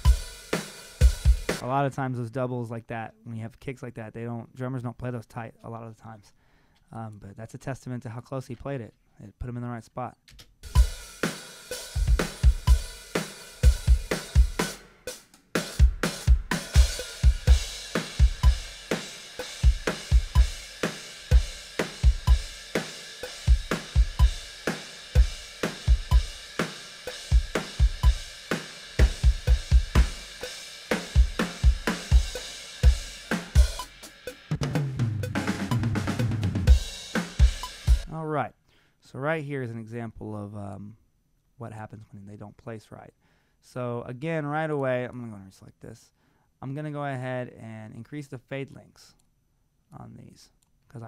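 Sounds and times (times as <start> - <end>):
snare drum: 0.0 - 1.6, 10.7 - 38.1
kick drum: 1.0 - 1.6, 12.0 - 13.0, 13.6 - 14.7, 15.8 - 18.8, 19.6 - 20.7, 21.3 - 22.6, 23.5 - 24.5, 25.2 - 26.4, 27.3 - 28.3, 29.0 - 30.4, 31.1 - 33.9
hi-hat: 10.7 - 34.5
cymbals: 10.7 - 38.1.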